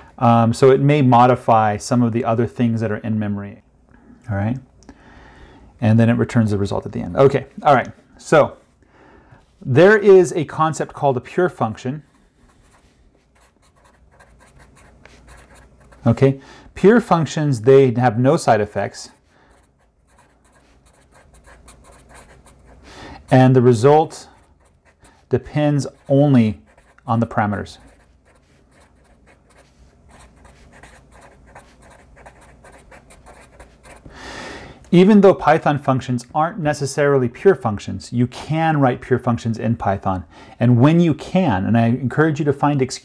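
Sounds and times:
marker scratching on board: 12.0s - 16.2s, 19.1s - 23.5s, 24.2s - 34.1s.

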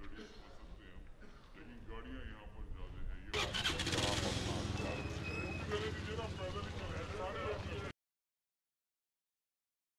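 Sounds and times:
faint voices: 0.0s - 7.9s
street noise: 0.0s - 7.9s
vehicle engine running: 3.4s - 7.9s.

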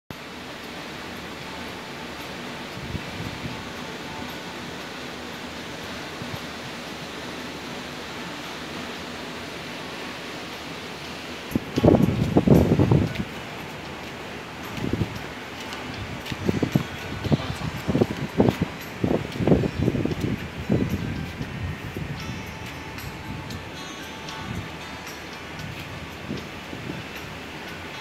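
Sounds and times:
wind hiss: 0.1s - 28.0s
wind buffeting microphone: 2.6s - 4.2s, 11.2s - 28.0s.

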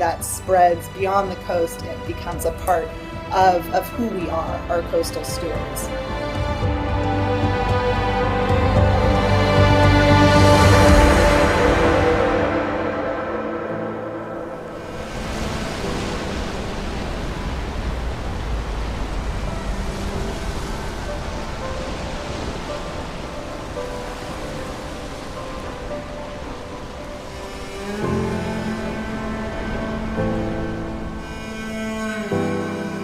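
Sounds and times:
soft background music: 0.0s - 33.0s
surf washing over rocks: 0.0s - 33.0s.

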